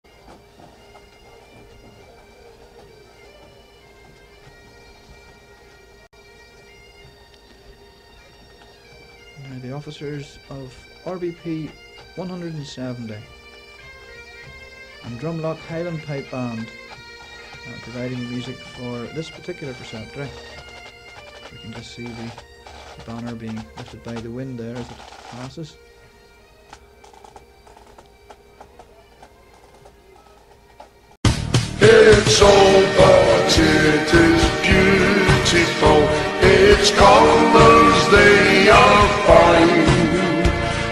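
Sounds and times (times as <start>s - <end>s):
bagpipe chanter tune: 0.1s - 40.9s
bagpipe drone: 0.1s - 40.9s
drum strokes: 14.5s - 25.6s, 31.2s - 40.9s.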